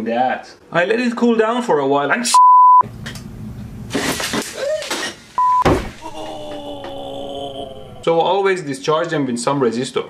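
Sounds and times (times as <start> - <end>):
censor bleep: 2.4 - 2.8, 5.4 - 5.7
sharp thump: 5.6 - 6.0
man's startled cry: 6.0 - 8.2.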